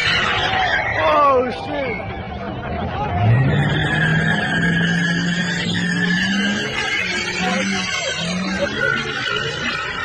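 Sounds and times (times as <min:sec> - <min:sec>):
car engine revving: 0:02.6 - 0:10.0
tyres squealing: 0:03.2 - 0:10.0.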